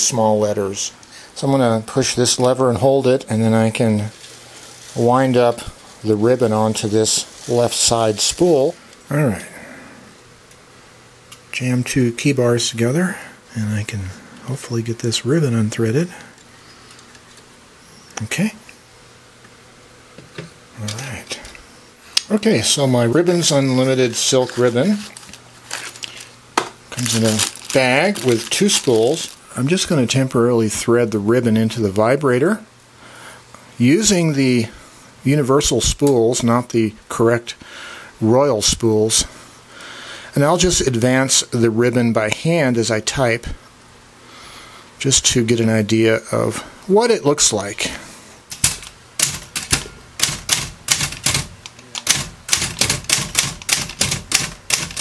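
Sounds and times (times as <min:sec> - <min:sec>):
manual typewriter clacking: 0:48.5 - 0:55.0.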